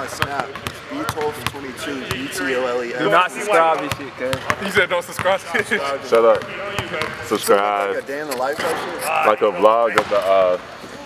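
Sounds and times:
voices talking: 0.0 - 10.6.

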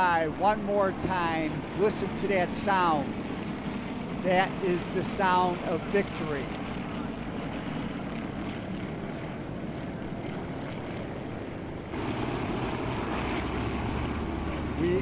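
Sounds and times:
propeller planes droning overhead: 0.0 - 15.0.

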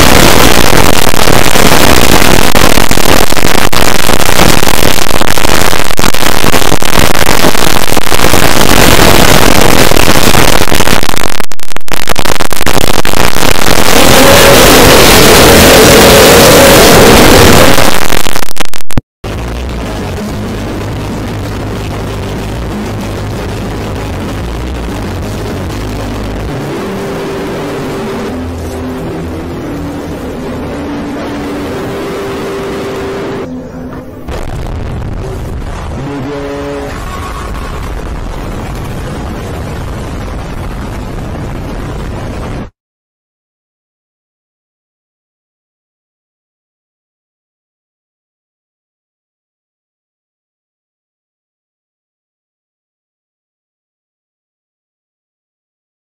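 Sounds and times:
held low tones: 0.0 - 38.0
harshly distorted noise: 0.0 - 42.8.

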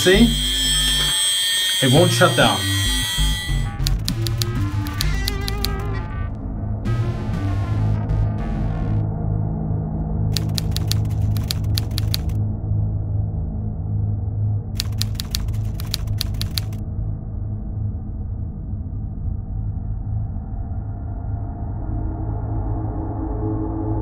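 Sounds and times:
ambient music with low drone: 0.0 - 11.6, 12.4 - 14.7
typewriter key clicks: 3.8 - 5.8, 10.4 - 12.4, 14.8 - 16.8.

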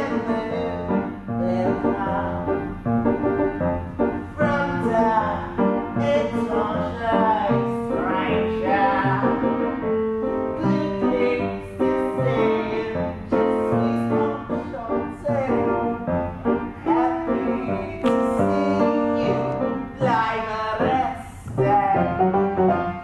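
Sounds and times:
piano accompaniment: 0.0 - 23.0.

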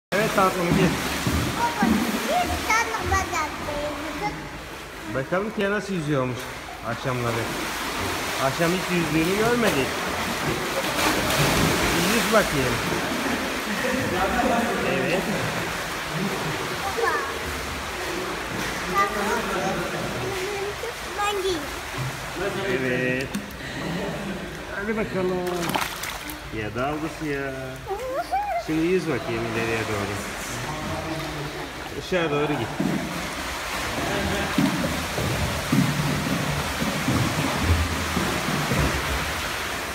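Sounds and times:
steady hiss of pool water: 0.1 - 39.9
young child's high-pitched voice: 1.6 - 4.6, 16.8 - 17.4, 20.2 - 21.8, 27.9 - 28.7.

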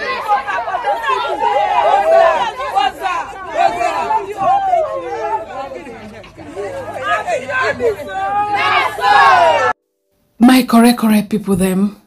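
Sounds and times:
women talking excitedly: 0.0 - 9.7.

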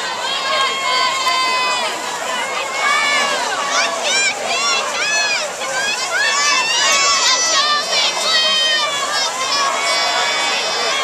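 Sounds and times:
crowd yelling and cheering: 0.0 - 11.0.

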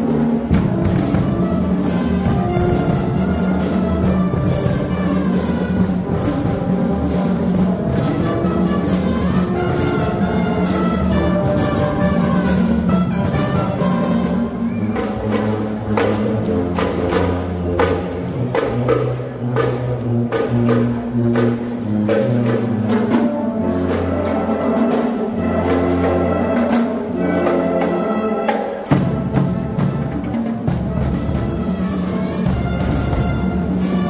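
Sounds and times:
bass and tenor drums: 0.0 - 34.0
brass chords: 0.0 - 34.0
marching band playing: 0.0 - 34.0.

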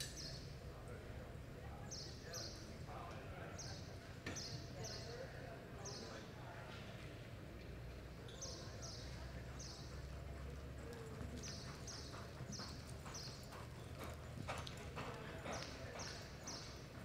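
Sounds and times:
horse hoofbeats on dirt: 8.9 - 17.0.

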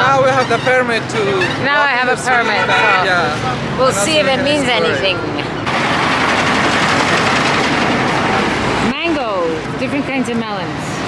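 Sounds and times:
heavy truck driving past: 0.0 - 10.2.

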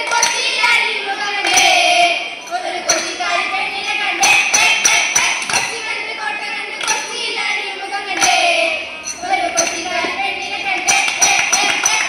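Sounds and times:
girls singing folk song: 0.0 - 12.0
hand claps: 10.8 - 12.0.

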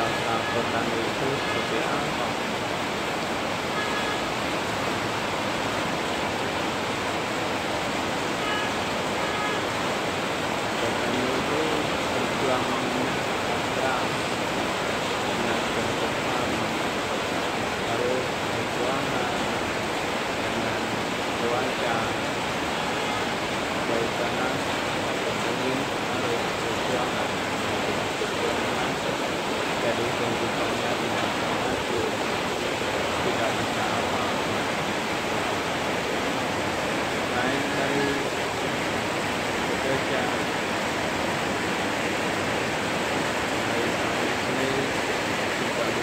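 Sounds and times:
heavy rain: 0.0 - 46.0.

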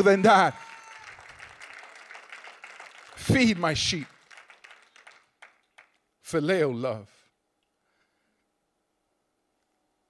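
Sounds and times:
scattered hand claps: 0.8 - 6.1.

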